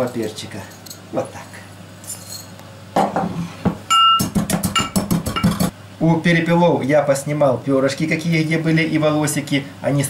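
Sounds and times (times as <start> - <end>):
metal pestle pounding in brass mortar: 4.2 - 5.7.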